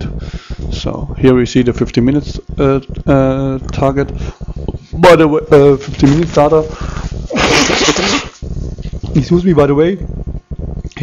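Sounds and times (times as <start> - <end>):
man sneezing: 7.3 - 8.4.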